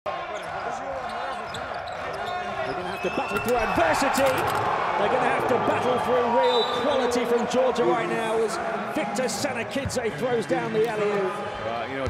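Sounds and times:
arena crowd voices: 0.1s - 12.0s.

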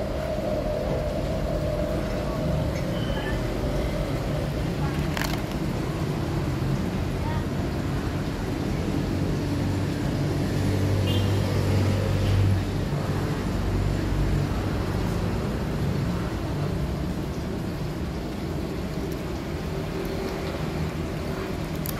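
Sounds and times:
vehicle engine rumble: 0.0s - 21.9s.

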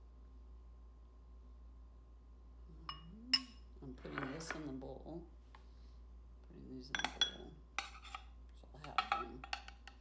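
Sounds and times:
metal spoon clinking on metal cup: 6.9s - 10.0s.

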